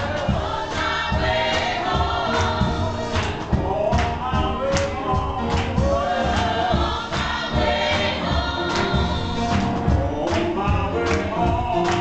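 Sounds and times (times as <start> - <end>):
gospel choir singing: 0.0 - 12.0
keyboard accompaniment: 0.0 - 12.0
steady low beat: 0.0 - 12.0.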